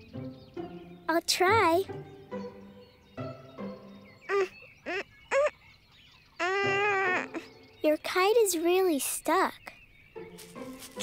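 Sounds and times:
high-pitched cartoon straining grunts: 6.4 - 7.5.

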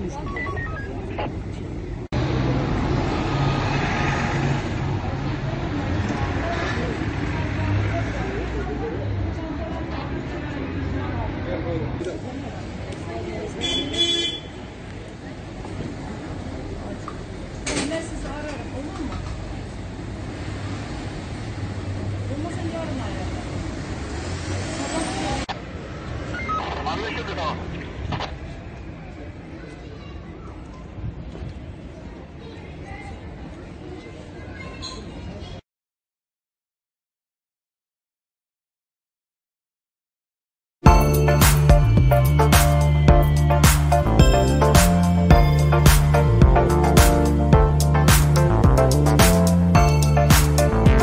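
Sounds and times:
street traffic: 0.0 - 35.6, 40.8 - 51.0
car driving past: 2.2 - 11.3, 20.0 - 26.4
vehicle engine humming: 40.9 - 51.0.

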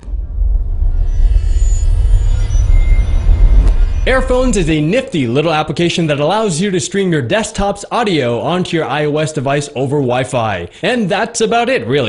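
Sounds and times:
faint thin high tones: 0.0 - 4.8
loud deep rumble: 0.0 - 4.9.

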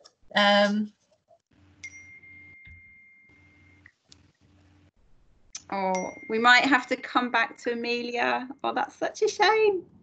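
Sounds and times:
steady high beep: 5.9 - 8.2.

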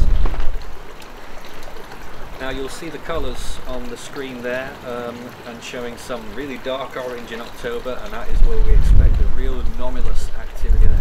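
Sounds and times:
wind buffeting microphone: 0.0 - 3.7, 7.6 - 11.0.

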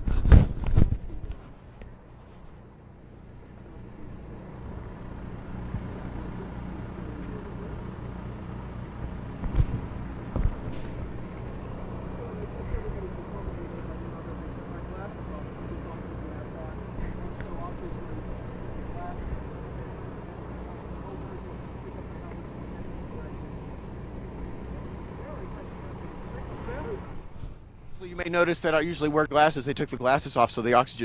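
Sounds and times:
low mechanical hum: 0.0 - 31.0
faint voices: 1.8 - 31.0.

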